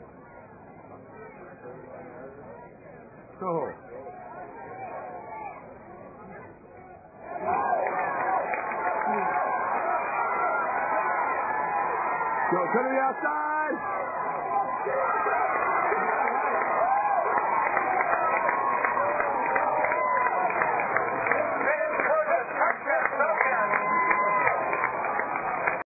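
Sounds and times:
crowd cheering and shouting: 3.5s - 5.8s, 6.8s - 25.8s
man's voice close by: 12.5s - 13.8s.

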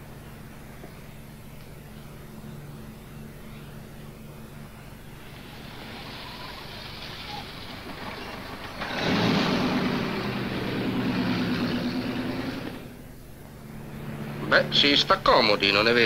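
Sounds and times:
car engine and tyres: 4.8s - 16.0s.

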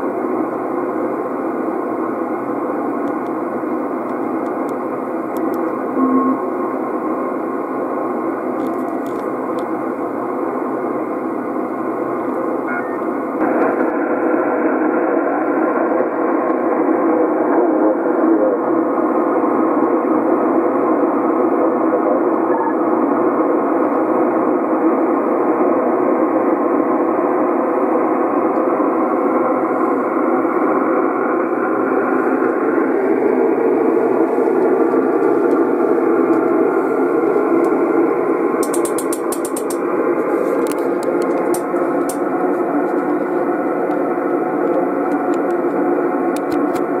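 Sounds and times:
radio static hiss: 0.1s - 47.0s.

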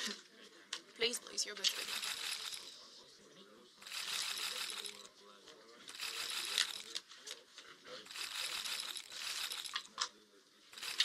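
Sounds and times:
casino chips clinking: 1.6s - 2.7s, 6.0s - 7.0s, 8.1s - 9.9s, 10.8s - 11.0s.

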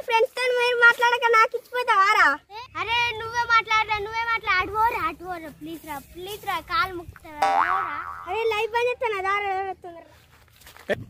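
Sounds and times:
comic boing sound effect: 7.4s - 8.3s.

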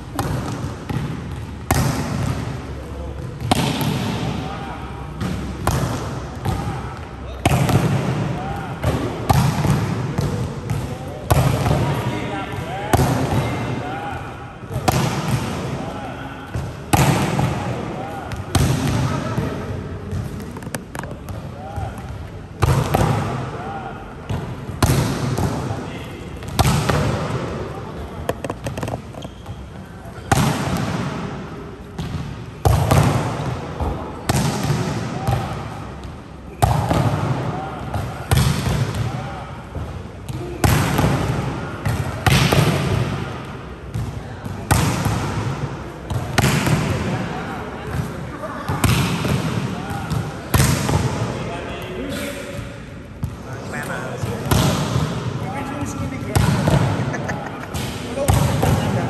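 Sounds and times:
volleyball smacking floor: 0.1s - 2.6s, 3.2s - 4.3s, 28.2s - 29.4s
players' voices: 0.1s - 59.0s
shoe squeaks: 28.9s - 30.0s.

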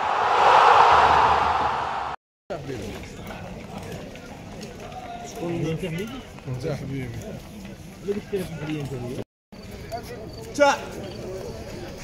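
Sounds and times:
rushing swell of noise: 0.0s - 2.2s.

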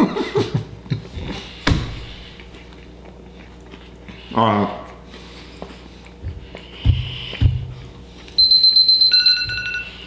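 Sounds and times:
timer alarm high electronic tone: 8.4s - 10.0s.

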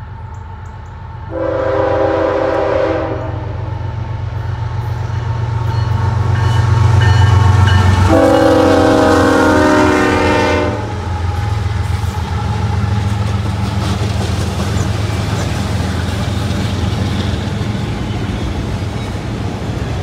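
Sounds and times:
locomotive air horn blasts: 1.3s - 3.7s, 7.9s - 11.1s.

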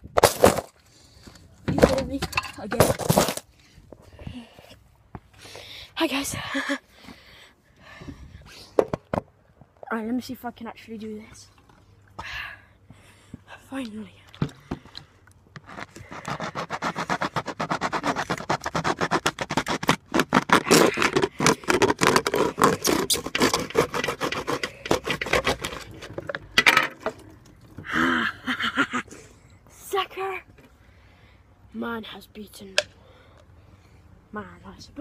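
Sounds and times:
knife sawing through plastic bottle: 15.6s - 26.4s
person making vocal sounds: 27.8s - 29.2s.

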